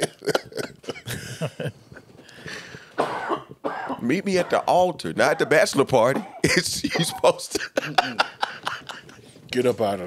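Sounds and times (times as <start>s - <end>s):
man coughing: 3.0s - 4.6s, 5.3s - 8.2s.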